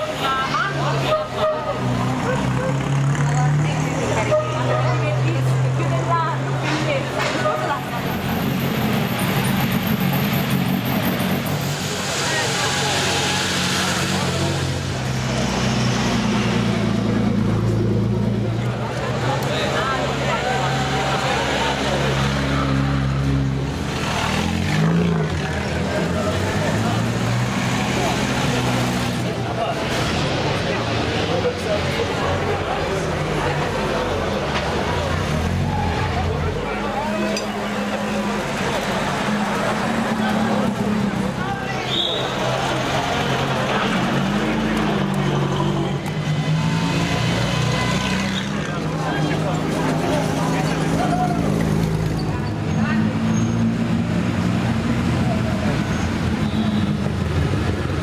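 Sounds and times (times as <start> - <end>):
crowd talking: 0.0 - 58.0.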